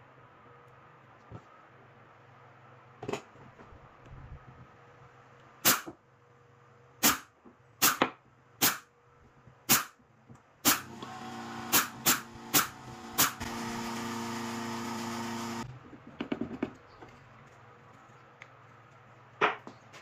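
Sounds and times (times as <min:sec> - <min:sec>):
brad nailer firing into wood: 0:10.6 - 0:11.0, 0:11.6 - 0:13.9
steady motor hum: 0:10.7 - 0:15.8.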